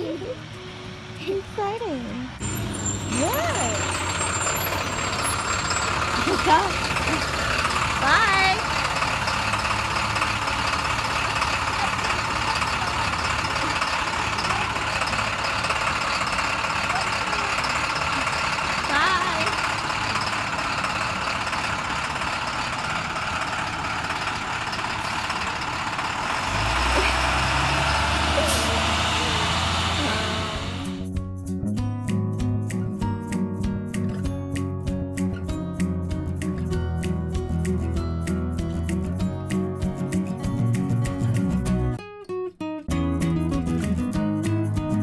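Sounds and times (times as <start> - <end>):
bus engine idling: 0.0 - 31.1.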